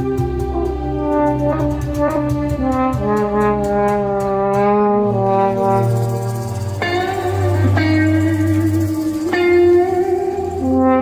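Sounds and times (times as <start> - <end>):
french horn melody: 0.0 - 11.0
low sustained tone: 5.0 - 11.0.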